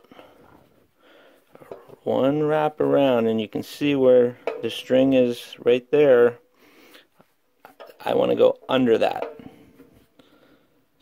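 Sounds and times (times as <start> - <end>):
banjo tuning peg handling: 4.3 - 5.3, 7.7 - 10.3.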